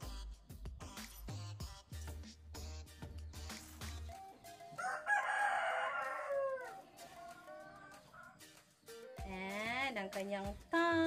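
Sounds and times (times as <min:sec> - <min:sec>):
rooster crowing: 0:04.8 - 0:08.4.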